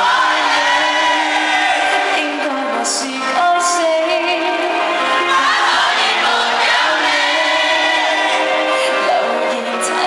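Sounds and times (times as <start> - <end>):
backing track: 0.0 - 10.0
woman singing pop song: 1.8 - 10.0.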